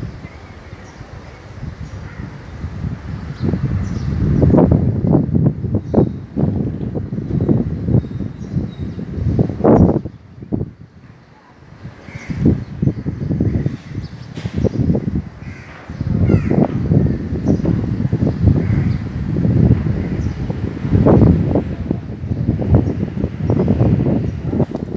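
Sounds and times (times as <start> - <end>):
wind buffeting microphone: 0.0 - 24.9.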